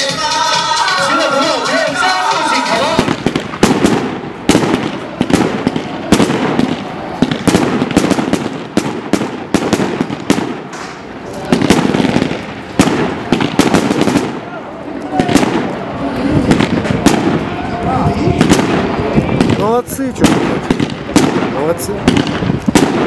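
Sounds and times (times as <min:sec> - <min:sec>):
music with singing: 0:00.0 - 0:03.1
fireworks bangs and crackles: 0:00.0 - 0:23.0.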